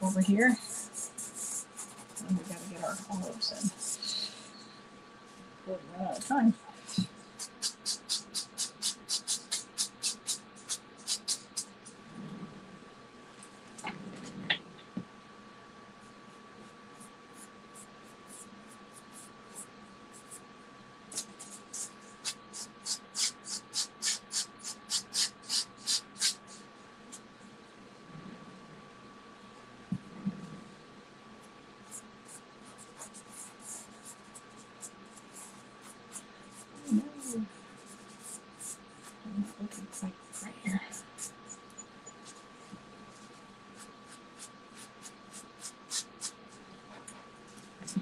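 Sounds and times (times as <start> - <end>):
pastel scratching on paper: 0.4 - 4.3, 7.3 - 11.8, 17.0 - 20.4, 21.1 - 27.2, 31.9 - 42.4, 43.1 - 46.4.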